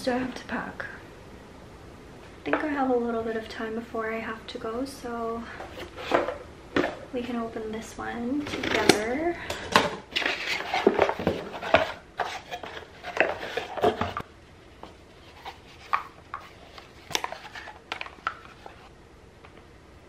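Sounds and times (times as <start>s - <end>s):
packaging rustling: 10.1s - 14.2s, 15.2s - 18.9s.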